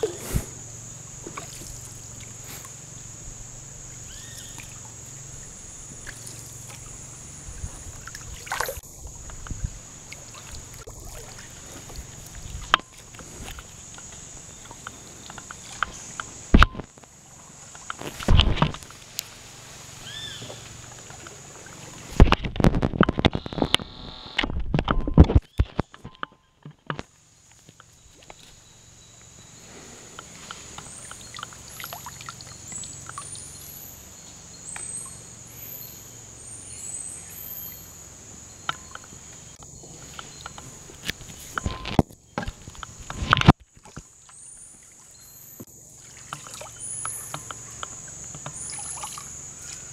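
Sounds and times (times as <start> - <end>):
canoe paddle strokes: 0.0 - 23.8, 38.7 - 49.9
water sloshing and dripping: 1.2 - 3.0, 4.1 - 22.6, 30.2 - 33.9, 39.9 - 49.9.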